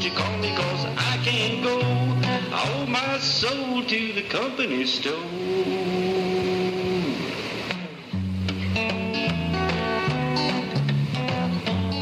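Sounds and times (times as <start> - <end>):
constant hiss: 0.0 - 12.0.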